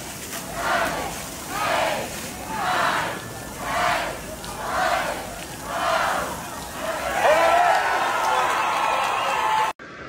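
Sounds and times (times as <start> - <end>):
group chanting: 0.4 - 8.0
loud shout: 0.6 - 9.8.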